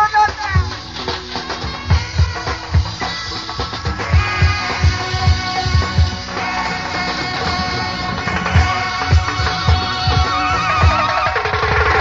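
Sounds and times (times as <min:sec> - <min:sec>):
live band music: 0:00.0 - 0:12.0
held wavering high note: 0:01.8 - 0:11.4
low drum hits: 0:04.2 - 0:10.4.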